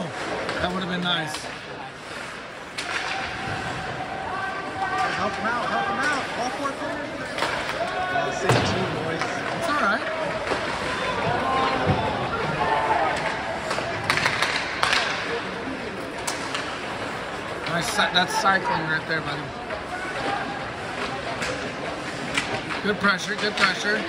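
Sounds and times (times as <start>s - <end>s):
crowd noise: 0.0s - 24.0s
puck and sticks knocking boards: 13.0s - 15.4s, 21.0s - 24.0s.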